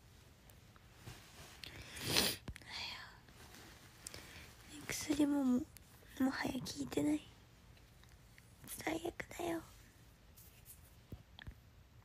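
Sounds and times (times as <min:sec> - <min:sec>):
woman whispering: 0:02.6 - 0:03.2, 0:04.7 - 0:07.4, 0:08.6 - 0:09.8.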